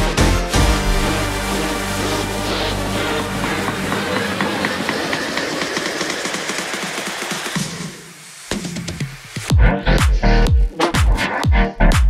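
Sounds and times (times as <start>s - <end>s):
electronic music: 0.0s - 12.0s.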